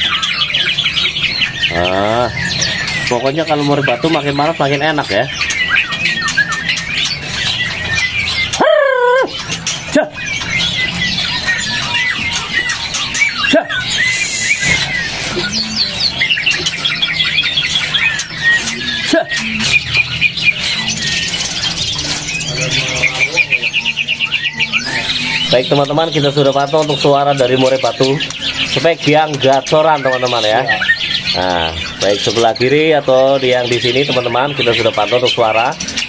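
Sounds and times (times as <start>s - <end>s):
bird singing whistled phrases: 0.0s - 35.2s.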